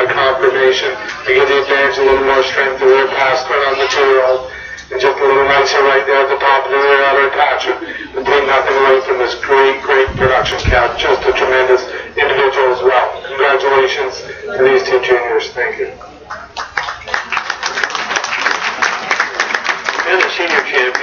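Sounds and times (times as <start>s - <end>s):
person talking over public address: 0.0s - 16.1s, 20.0s - 21.0s.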